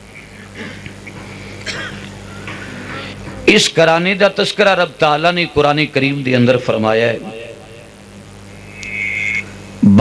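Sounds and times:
low steady hum: 0.0 - 10.0
man speaking over microphone: 3.5 - 7.9.

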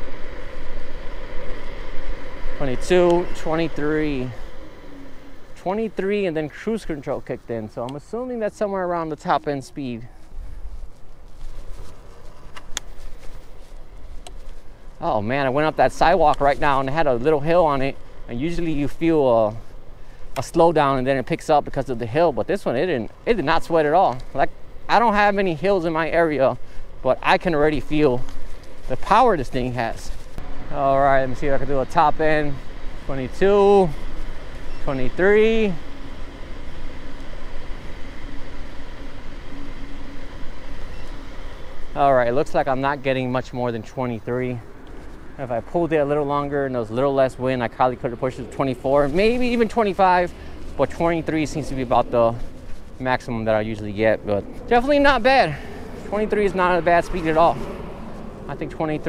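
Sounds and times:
electric motor whine: 0.0 - 7.0, 32.5 - 42.0
road noise: 0.0 - 59.0
scooter wheel noise: 0.0 - 59.0
wind rumble on microphone: 22.6 - 59.0.

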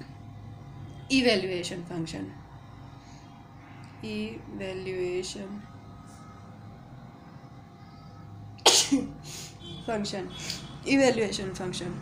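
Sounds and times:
faint steady hum: 0.0 - 12.0
woman sneezing: 8.6 - 9.6.

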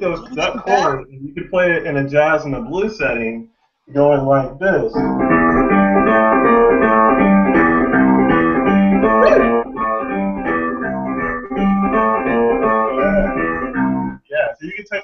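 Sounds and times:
digital keyboard chords: 4.7 - 14.3
repeating bass note: 7.6 - 14.1.

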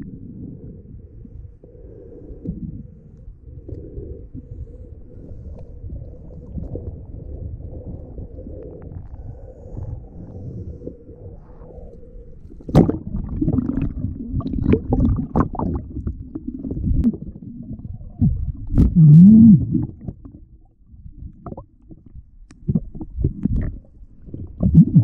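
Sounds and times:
muffled underwater knocks and thumps: 12.7 - 25.0.

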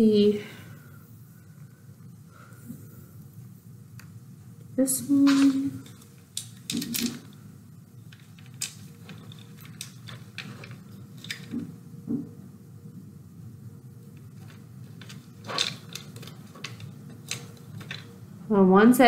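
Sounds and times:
low room hum: 0.0 - 19.0
small clicks and rustles: 5.3 - 11.8, 14.0 - 18.2.

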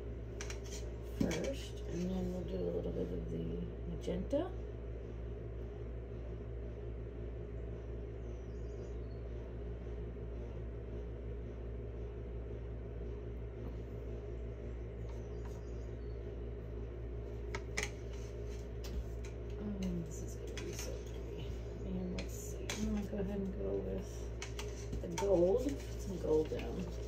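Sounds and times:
low background hum: 0.0 - 27.0.

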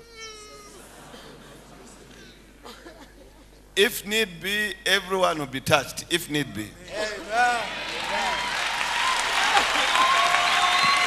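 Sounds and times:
faint hall murmur: 0.0 - 4.2.

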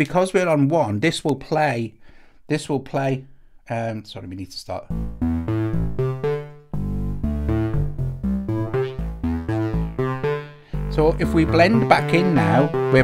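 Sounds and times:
short pitched synth notes: 4.9 - 13.0
synth bass line: 4.9 - 13.0.

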